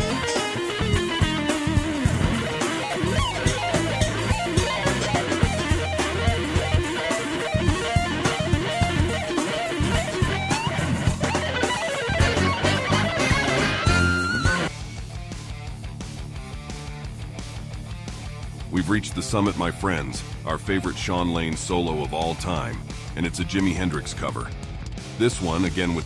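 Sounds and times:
electric guitar solo: 0:00.0 - 0:14.7
bass and drums: 0:00.0 - 0:26.0.

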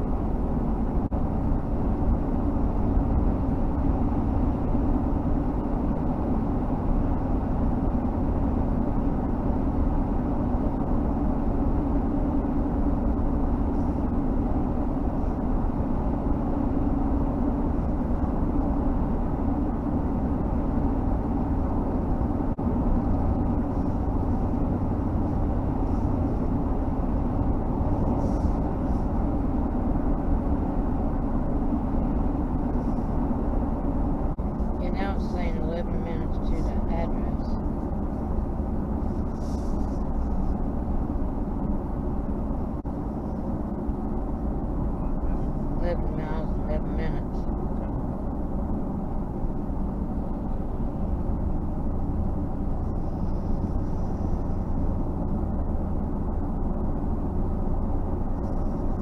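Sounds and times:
car tyres and engine rumble: 0:00.0 - 0:59.0.

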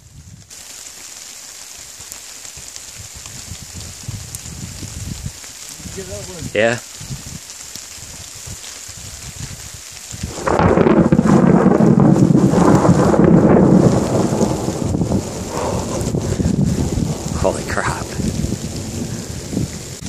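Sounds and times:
thunder rumbling: 0:10.2 - 0:20.0.

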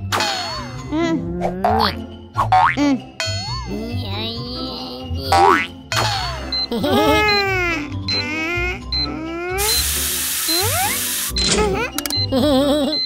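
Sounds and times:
children's background music: 0:00.0 - 0:13.0.

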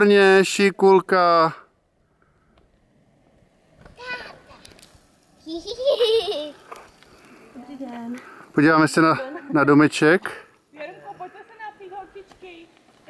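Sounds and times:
child calling from afar: 0:04.0 - 0:04.7.

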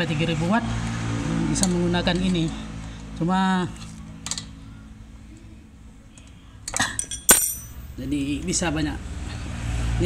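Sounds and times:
spanner clinking on metal: 0:06.8 - 0:07.9.

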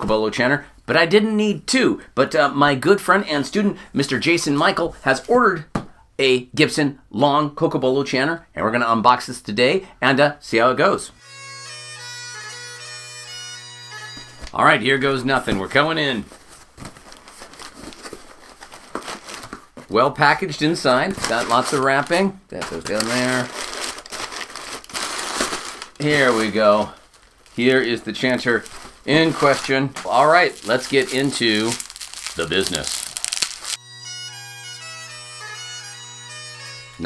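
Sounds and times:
bagpipes playing a melody: 0:11.2 - 0:14.6, 0:33.7 - 0:37.0
packing paper crinkling: 0:15.3 - 0:20.0, 0:20.7 - 0:33.8.

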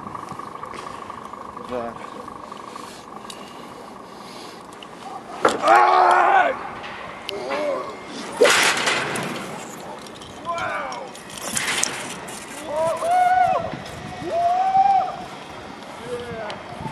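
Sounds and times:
person yelling: 0:05.6 - 0:06.6
wind rushing over microphone: 0:12.8 - 0:16.9.

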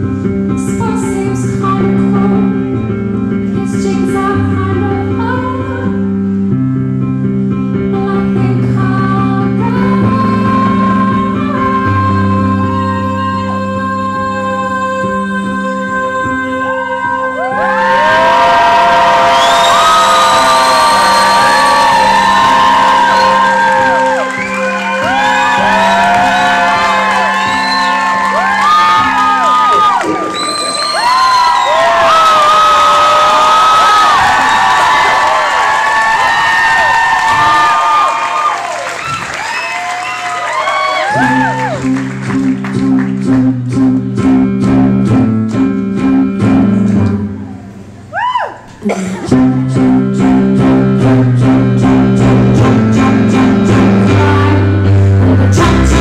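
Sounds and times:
audience cheering and screaming: 0:17.4 - 0:41.9, 0:48.1 - 0:48.7.

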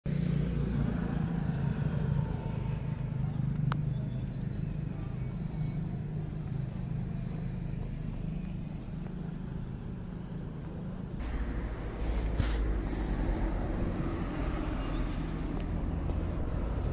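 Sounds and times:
traffic engine rumble: 0:00.0 - 0:16.9.

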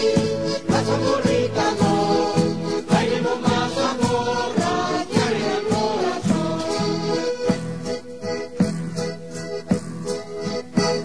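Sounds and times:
voices singing together: 0:00.0 - 0:07.6
instrumental accompaniment with beat: 0:00.0 - 0:11.0.

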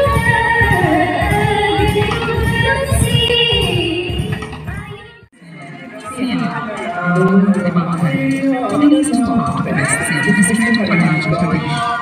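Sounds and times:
music with group singing: 0:00.0 - 0:12.0
people's voices: 0:05.4 - 0:12.0.

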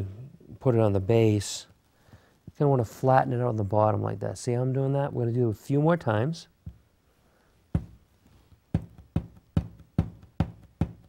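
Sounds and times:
clay knocking on tabletop: 0:07.8 - 0:11.0.

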